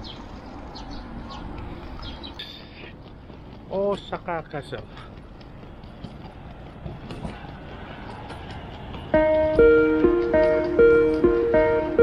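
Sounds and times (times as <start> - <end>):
footsteps on pavement: 0.0 - 12.0
road traffic: 0.0 - 12.0.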